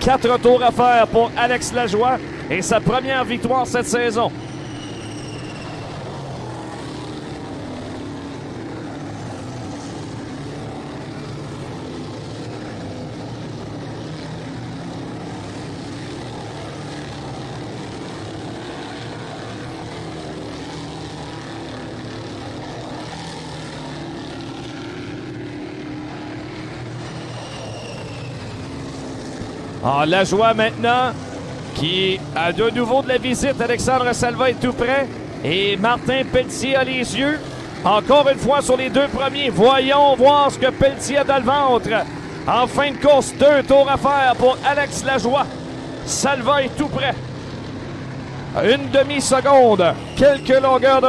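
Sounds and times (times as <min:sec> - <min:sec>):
race car engines droning: 0:00.0 - 0:51.0.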